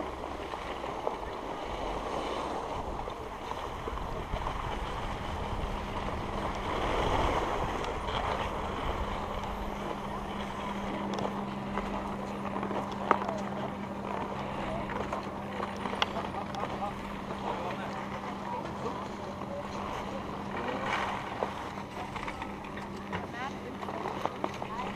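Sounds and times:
wind on microphone: 0.0s - 13.0s
steady low hum: 0.0s - 24.9s.

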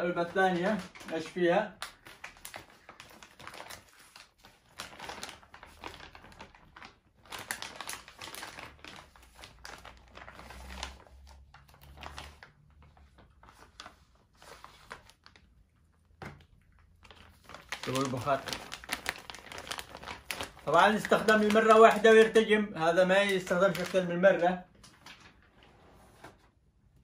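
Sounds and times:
plastic packaging crinkling: 0.0s - 25.6s.

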